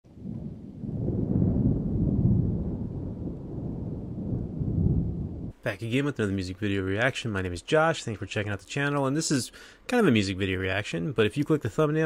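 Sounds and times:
deep rumble: 0:00.0 - 0:05.6.

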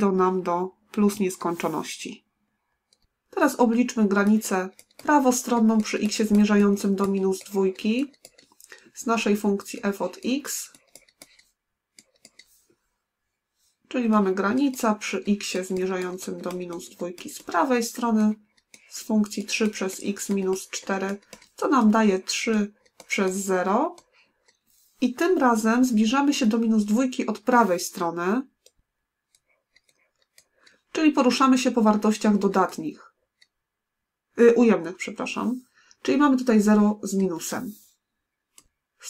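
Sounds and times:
person speaking: 0:00.0 - 0:02.3, 0:02.9 - 0:12.7, 0:13.8 - 0:33.2, 0:34.3 - 0:38.7
stylus clicks on writing tablet: 0:03.9 - 0:12.6, 0:14.2 - 0:24.6.

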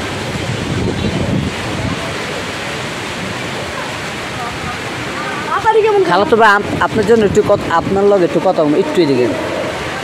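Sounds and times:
rain: 0:00.0 - 0:10.0
wind: 0:00.0 - 0:10.0.

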